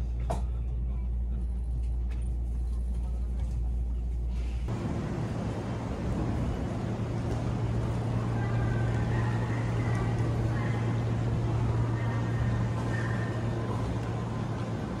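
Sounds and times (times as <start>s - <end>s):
electric train humming: 4.7s - 15.0s.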